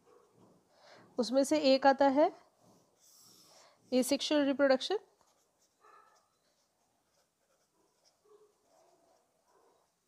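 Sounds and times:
pen scratching on paper: 0:05.2 - 0:10.0.

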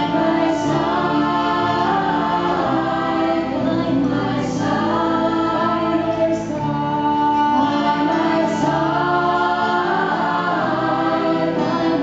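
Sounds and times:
acoustic guitar: 0:00.0 - 0:12.0
keyboard: 0:00.0 - 0:12.0
women singing a slow duet: 0:00.0 - 0:12.0.

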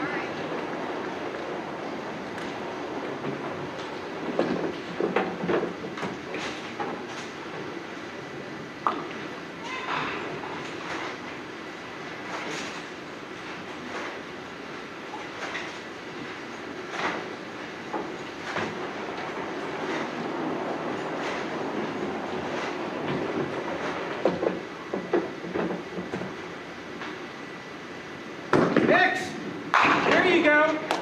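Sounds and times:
bowling balls rolling rumble: 0:00.0 - 0:31.0
balls and pins clacking: 0:00.5 - 0:07.7, 0:08.8 - 0:09.4, 0:29.6 - 0:31.0.

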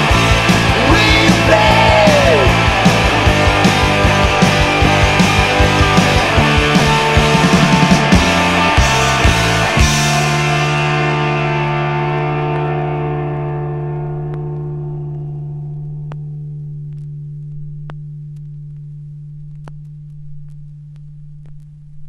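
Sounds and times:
distorted electric guitar chord ringing: 0:00.0 - 0:21.4.

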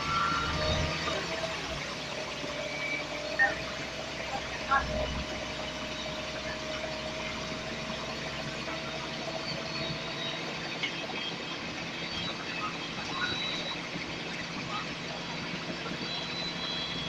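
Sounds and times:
bus engine drone: 0:00.0 - 0:17.0
faint whine: 0:00.0 - 0:17.0.

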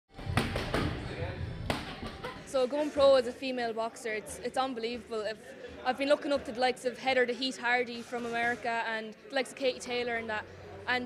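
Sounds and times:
boxing gloves smacking mitts: 0:00.2 - 0:01.0, 0:01.6 - 0:02.4.

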